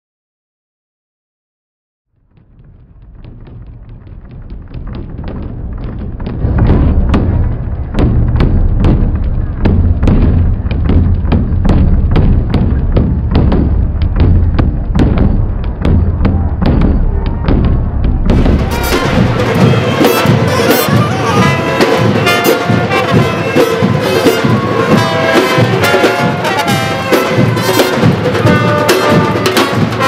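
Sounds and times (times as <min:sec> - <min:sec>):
deep bass drums: 0:02.1 - 0:30.0
samba percussion band drumming: 0:03.2 - 0:30.0.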